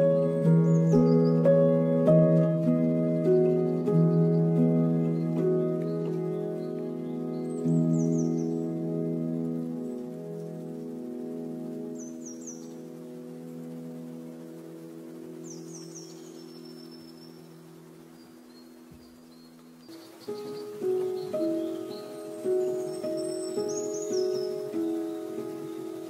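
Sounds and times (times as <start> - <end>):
bird chirps: 0.0 - 26.0
soft ambient music: 0.0 - 26.0.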